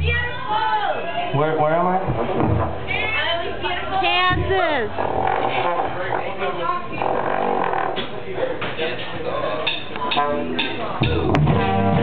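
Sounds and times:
amplifier hum: 4.3s - 8.5s.

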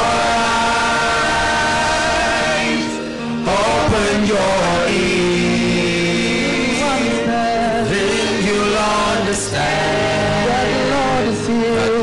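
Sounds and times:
worship music sustained chord: 0.0s - 12.0s.

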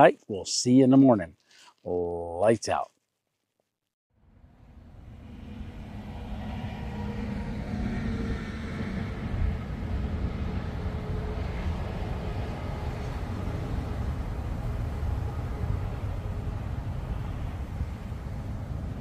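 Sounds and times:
distant highway traffic rumble: 4.5s - 19.0s.

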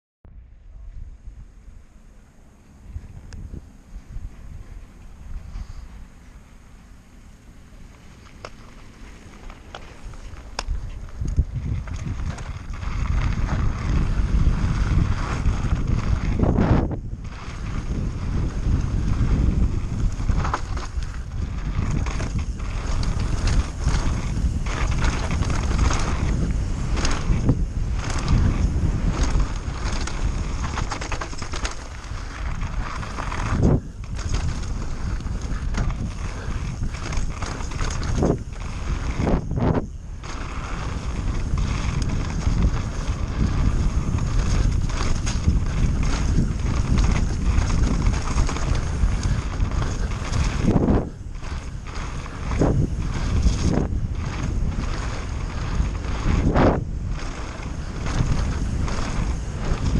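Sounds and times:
bike tyres rumbling over gravel: 0.7s - 59.9s
bike knocking and rattling: 1.6s - 59.9s
wind on microphone: 2.7s - 6.7s, 8.0s - 59.9s.

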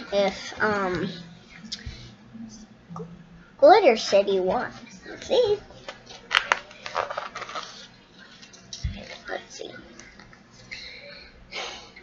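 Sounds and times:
book page turning: 5.8s - 8.6s.

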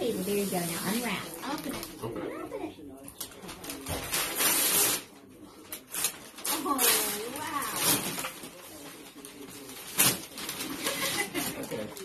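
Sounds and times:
paper rustling: 3.2s - 12.0s
wrapping paper ripping: 3.2s - 12.0s.

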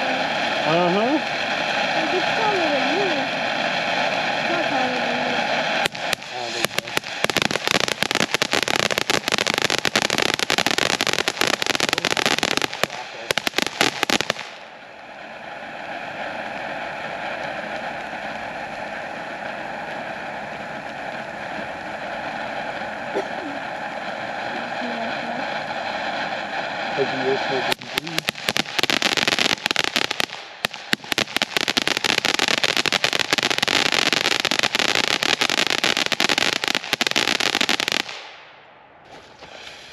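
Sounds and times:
firework crackling: 0.0s - 39.9s
firework fountain hissing: 0.0s - 39.9s.

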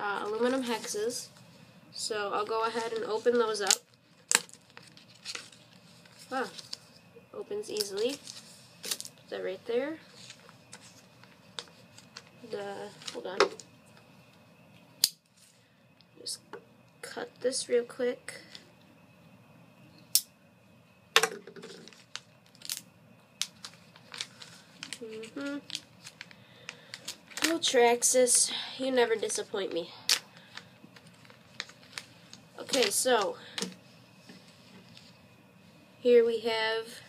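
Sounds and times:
plastic bag rustling: 2.3s - 7.0s, 7.6s - 13.7s, 21.6s - 22.8s, 23.4s - 27.8s, 29.2s - 35.2s.

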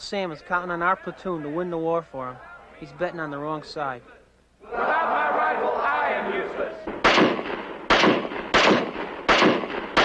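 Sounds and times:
rifle shots echoing: 6.9s - 10.0s.

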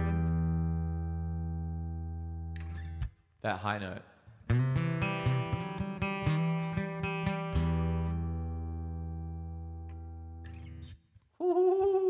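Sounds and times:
acoustic guitar plucking: 0.0s - 3.2s, 4.4s - 11.0s.

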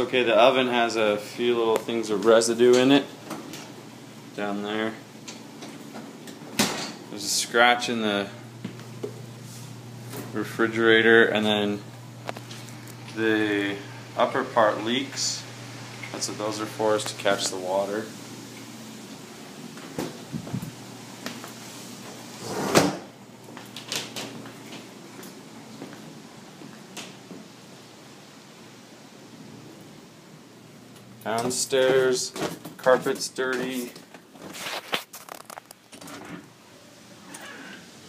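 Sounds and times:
drawer sliding: 22.4s - 23.1s.

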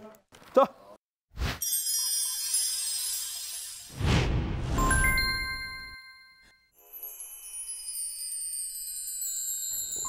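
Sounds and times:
shimmering sparkle sound effect: 1.6s - 10.0s.

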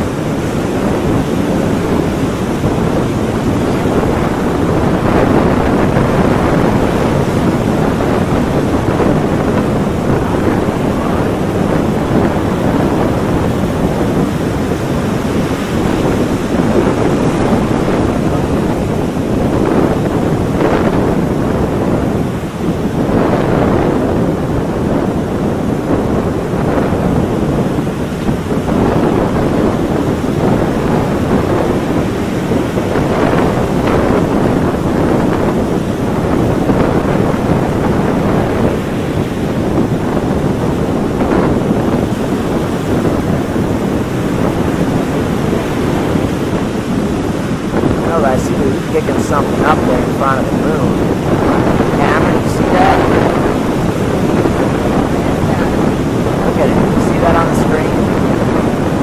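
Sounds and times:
loud steady rushing noise: 0.0s - 59.0s.

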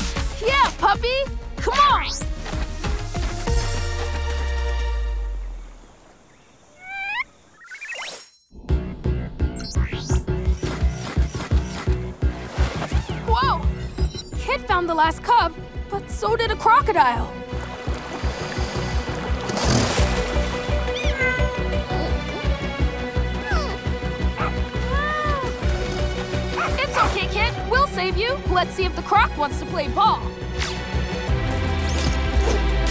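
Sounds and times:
cartoon score with pulsing beat: 8.7s - 11.9s
cartoon cat mew: 20.9s - 21.6s.

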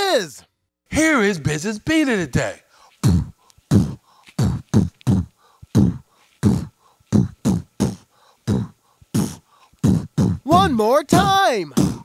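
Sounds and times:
man beatboxing: 3.0s - 12.0s.

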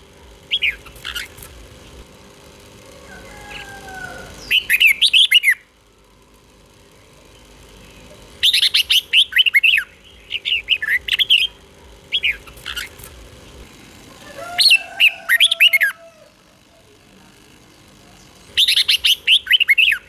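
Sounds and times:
bird singing gliding notes: 3.2s - 5.7s, 6.9s - 13.6s.

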